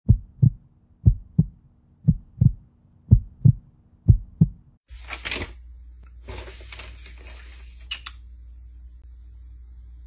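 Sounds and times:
heartbeat double thumps: 0.0 - 4.8.

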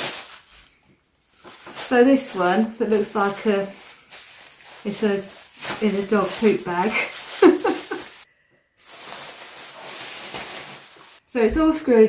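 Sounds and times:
plastic bag rustling and crinkling: 0.0 - 11.3.

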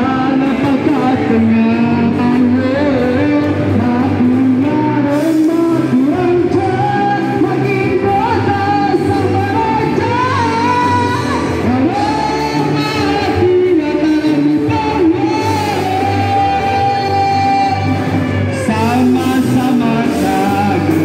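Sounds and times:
lead singer singing: 0.0 - 21.0
live band playing: 0.0 - 21.0.

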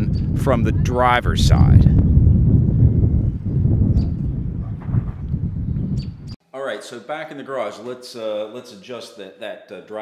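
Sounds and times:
wind buffeting microphone: 0.0 - 6.4.

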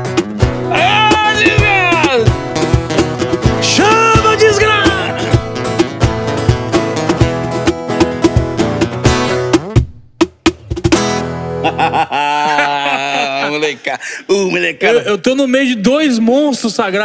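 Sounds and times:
acoustic guitars strumming: 0.0 - 9.8, 10.7 - 11.9
cajon percussion: 0.0 - 11.4
man speaking: 0.7 - 2.4, 3.6 - 5.5, 12.5 - 17.0.

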